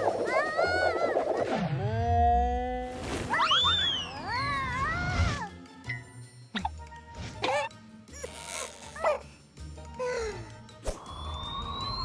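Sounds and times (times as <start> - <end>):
light music: 4.3 - 12.0.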